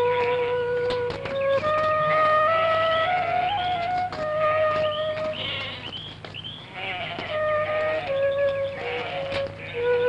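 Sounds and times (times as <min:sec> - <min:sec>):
sheep bleating: 0:00.0 - 0:01.0, 0:04.5 - 0:06.0, 0:06.6 - 0:10.0
solo flute melody: 0:00.0 - 0:05.4, 0:07.3 - 0:10.0.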